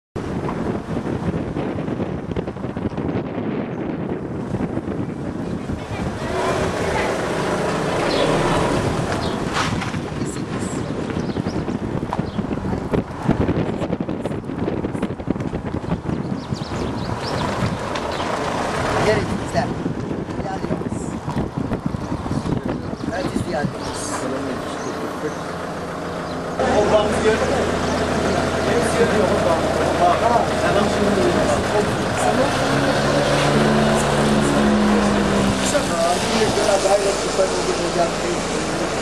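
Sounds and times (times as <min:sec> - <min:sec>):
wind noise on microphone: 0:00.2 - 0:39.0.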